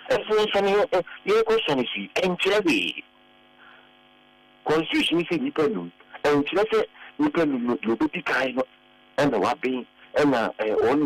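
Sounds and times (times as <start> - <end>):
man speaking: 0.0 - 3.0, 4.6 - 11.0
electrical hum: 0.0 - 11.0.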